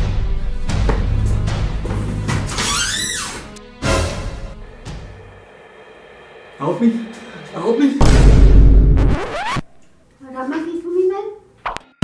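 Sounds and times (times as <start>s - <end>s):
hum rising in pitch: 4.6s - 9.8s.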